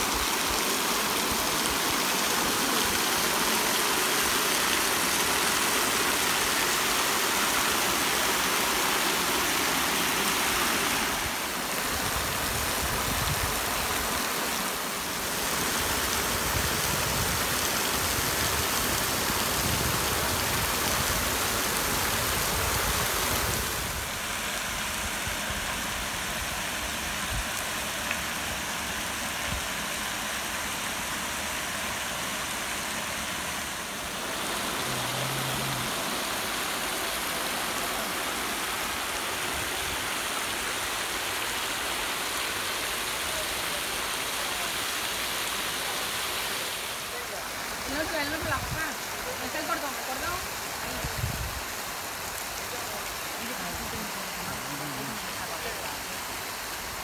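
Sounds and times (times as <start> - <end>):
fountain water splashing into basin: 0.0 - 57.0.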